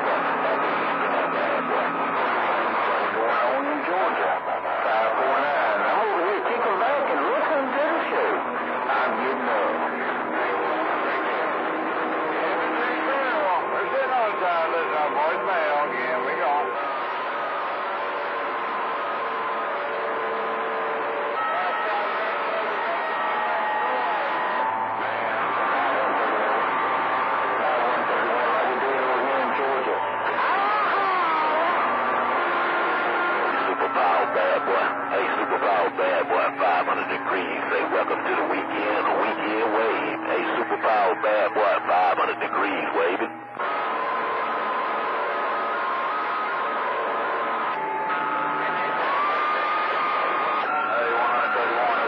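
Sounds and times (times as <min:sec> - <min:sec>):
radio static hiss: 0:00.0 - 0:11.3, 0:33.4 - 0:43.8
weak garbled radio voices: 0:00.0 - 0:52.0.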